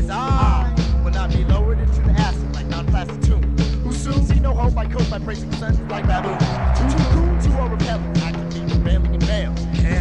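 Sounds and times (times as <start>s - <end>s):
hip hop beat: 0.0s - 10.0s.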